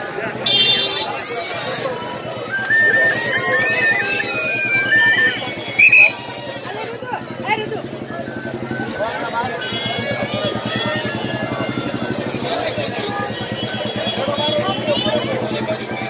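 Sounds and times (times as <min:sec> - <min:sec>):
crowd voices: 0:00.0 - 0:16.0
brief shrill high note: 0:02.7 - 0:06.2.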